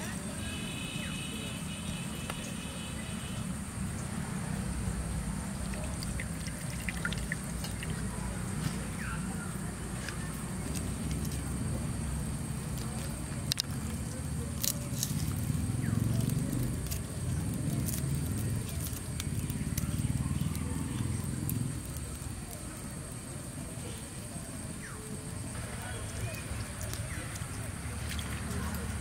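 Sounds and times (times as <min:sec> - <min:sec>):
garlic skins crackling: 0:05.0 - 0:29.0.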